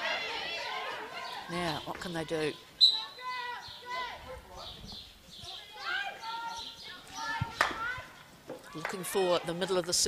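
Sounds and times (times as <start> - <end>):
distant high-pitched shouted calls: 0.0 - 4.8, 5.4 - 9.4.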